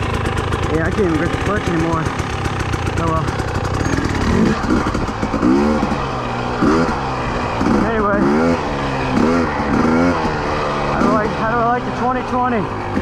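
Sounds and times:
two-stroke engine revving: 0.0 - 13.0.

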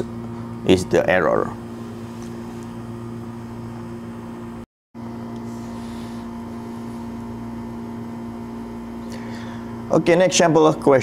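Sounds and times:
steady low background hum: 0.0 - 11.0.

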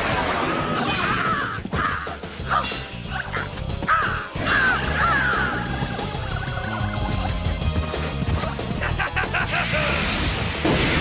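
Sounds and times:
action background music: 0.0 - 11.0.

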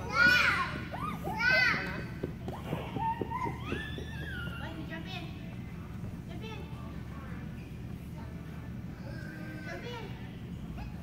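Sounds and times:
children squealing and calling: 0.0 - 4.9.

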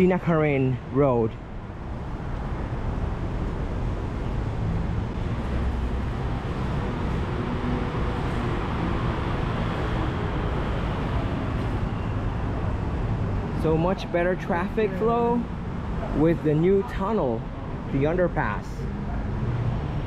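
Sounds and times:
road traffic: 0.0 - 20.0.

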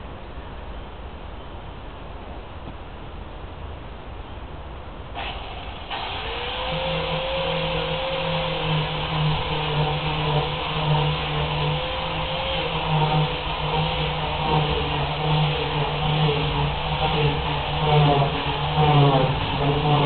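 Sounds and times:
angle grinder grinding metal: 5.2 - 20.0.

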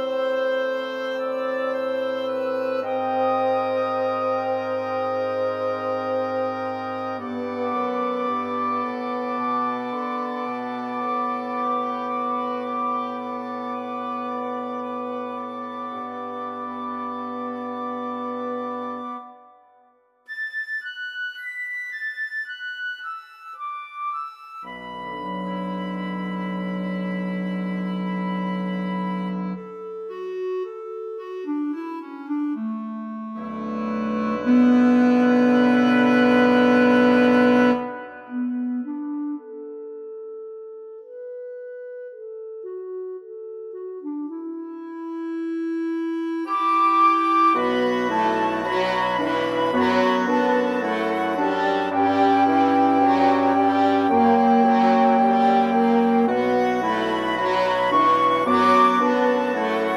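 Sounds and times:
solo clarinet line: 0.0 - 59.9
woodwind quintet playing: 0.0 - 59.9.

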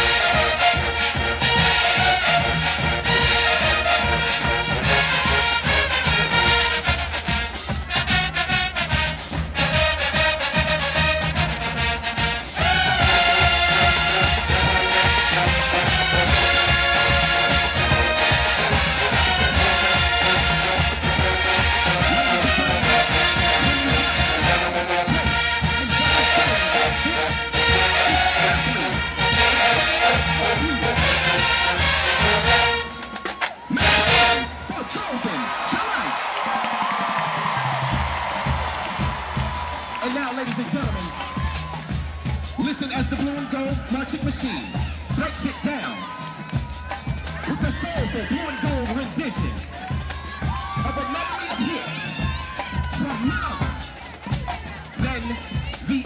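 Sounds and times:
marching band playing brass tune: 0.0 - 56.0.

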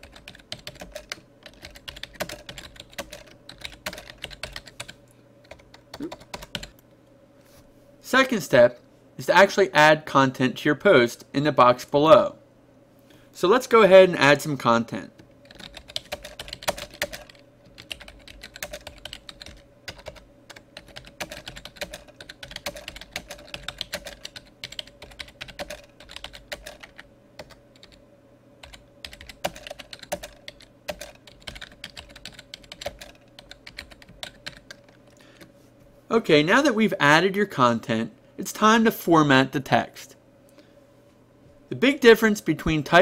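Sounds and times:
typing on computer keyboard: 0.0 - 6.8, 15.4 - 28.0, 28.6 - 35.0
faint steady hum: 0.0 - 43.0.

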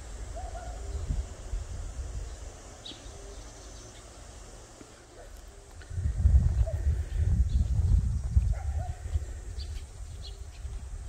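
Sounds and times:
steady low rumble: 5.8 - 11.0.

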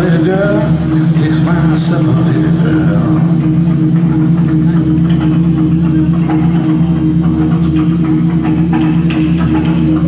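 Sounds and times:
blues band playing: 0.0 - 10.0
low droning note: 0.0 - 10.0.

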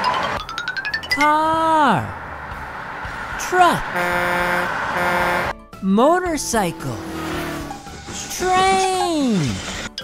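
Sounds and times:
truck horn honking: 3.5 - 5.6.

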